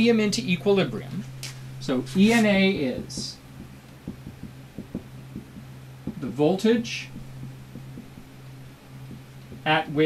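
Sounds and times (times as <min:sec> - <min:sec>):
steady low hum: 0:00.0 - 0:10.0
marker tapping on whiteboard: 0:03.0 - 0:08.3, 0:09.1 - 0:09.7.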